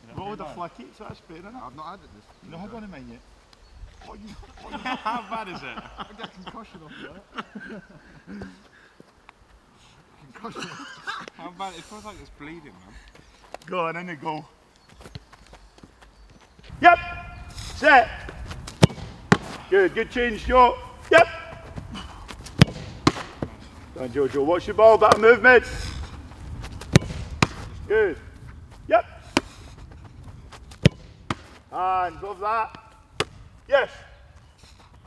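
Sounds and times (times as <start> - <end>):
footsteps on grass: 14.5 - 16.8, 17.4 - 35.0
man shouting: 16.7 - 18.2, 20.3 - 21.7, 27.9 - 28.3, 28.9 - 29.2
football being kicked: 18.2 - 19.7, 21.0 - 23.6, 26.8 - 27.8, 30.7 - 31.6, 32.7 - 33.6.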